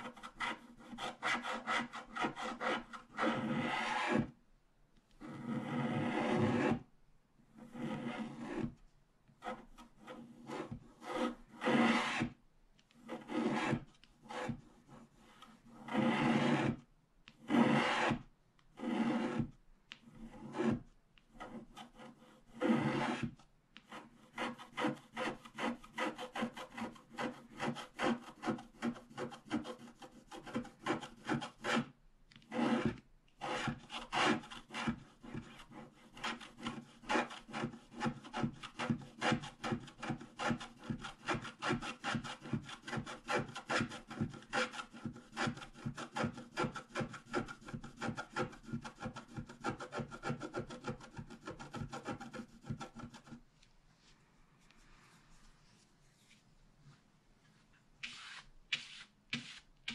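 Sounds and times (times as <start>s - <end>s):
stylus scraping scratch-art card: 0.0s - 4.3s, 5.2s - 6.8s, 7.6s - 8.7s, 9.4s - 53.4s, 58.0s - 59.9s.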